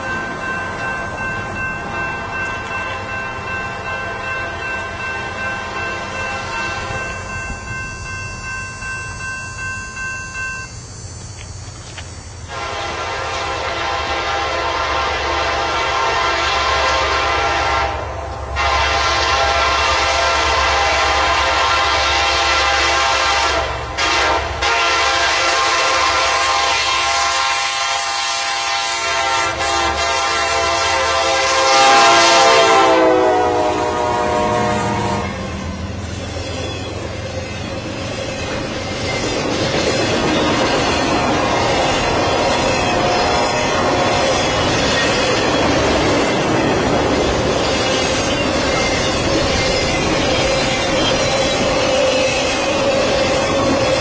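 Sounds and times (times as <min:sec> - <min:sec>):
train rumbling on rails: 0:00.0 - 0:54.0
locomotive horn blasts: 0:04.2 - 0:07.2, 0:12.4 - 0:35.6, 0:41.3 - 0:44.8.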